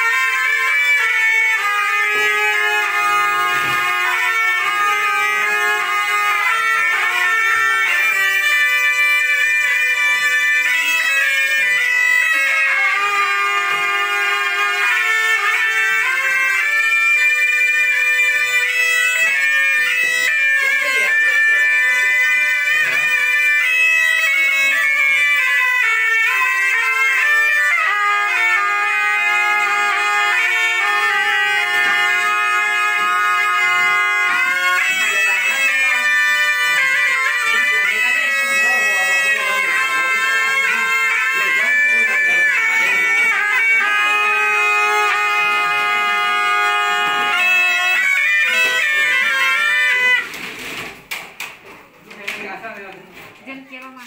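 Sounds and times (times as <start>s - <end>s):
shrill double-reed horn music: 0.0s - 50.8s.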